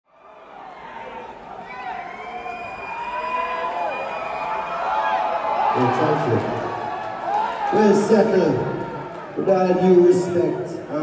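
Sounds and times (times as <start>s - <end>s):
audience cheering and whooping: 0.2s - 9.3s.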